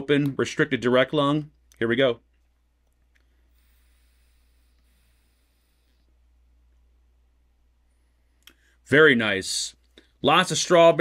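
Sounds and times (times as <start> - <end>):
airy hiss of vape inhale: 3.2 - 6.2.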